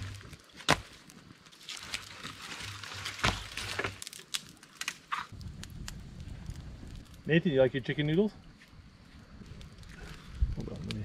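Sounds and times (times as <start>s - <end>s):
rustling: 0.0s - 5.4s.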